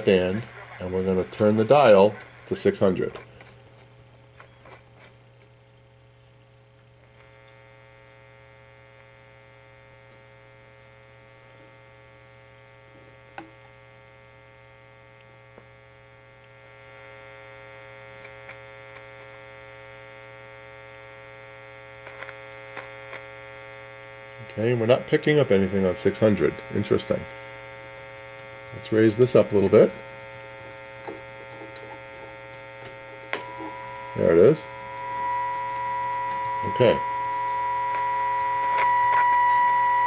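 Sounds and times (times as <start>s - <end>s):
radio speaker mains hum: 0.0s - 40.0s
radio dial clicks: 22.0s - 23.8s, 29.5s - 39.8s.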